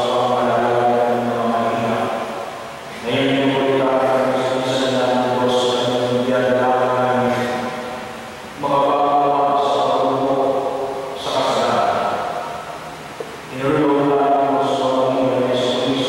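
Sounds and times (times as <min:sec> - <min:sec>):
priest chanting: 0:00.0 - 0:12.8, 0:13.5 - 0:16.0.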